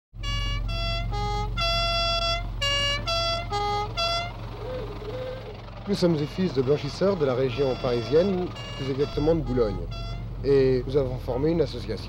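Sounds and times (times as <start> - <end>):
short tune of held notes: 0.2 - 5.5, 6.9 - 10.3
steady low hum: 0.2 - 11.2.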